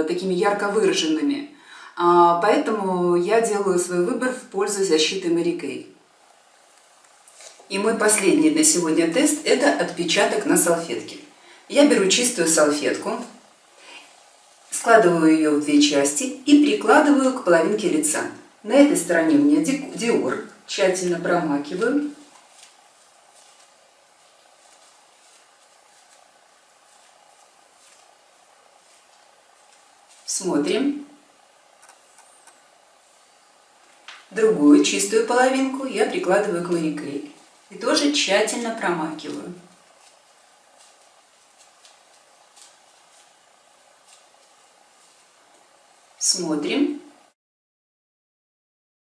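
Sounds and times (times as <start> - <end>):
quiet room noise: 0.0 - 47.4
steady low hiss: 0.0 - 47.4
paper tissue rustling: 6.1 - 16.9, 19.3 - 47.3.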